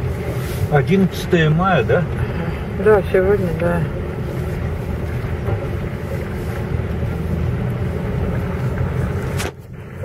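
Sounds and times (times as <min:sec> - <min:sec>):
car engine and tyre drone: 0:00.0 - 0:10.0.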